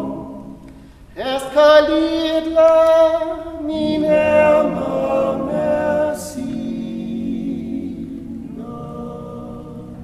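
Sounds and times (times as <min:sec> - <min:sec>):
men singing a cappella: 0:01.2 - 0:10.0.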